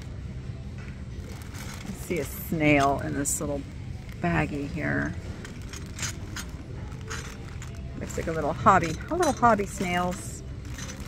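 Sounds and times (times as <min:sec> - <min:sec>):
plastic bag rustling: 0:01.2 - 0:11.0.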